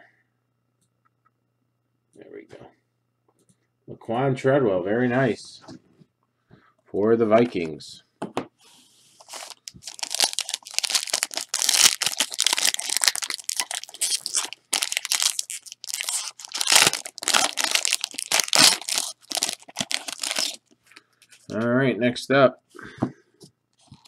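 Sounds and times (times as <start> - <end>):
foil wrapper tearing and crinkling: 9.2 - 20.7.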